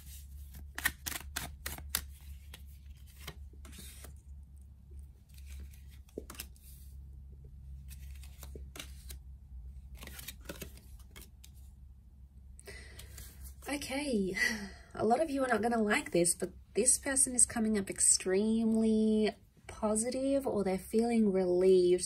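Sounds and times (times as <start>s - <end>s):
cards being shuffled: 0.0s - 4.3s, 5.1s - 7.0s, 7.7s - 11.7s.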